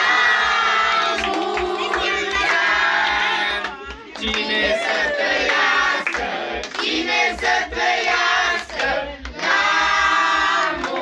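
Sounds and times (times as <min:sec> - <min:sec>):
group singing: 0:00.0 - 0:11.0
hand clapping: 0:01.0 - 0:02.7, 0:03.6 - 0:11.0.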